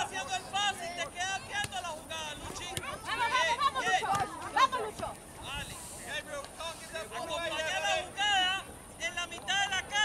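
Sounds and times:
crowd chatter: 0:00.0 - 0:10.0
spectators talking and calling out: 0:00.0 - 0:10.0.

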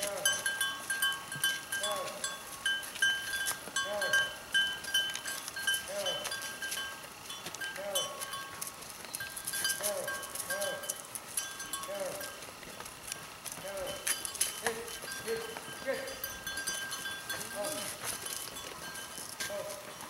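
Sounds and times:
neck bells clinking: 0:00.0 - 0:20.0.

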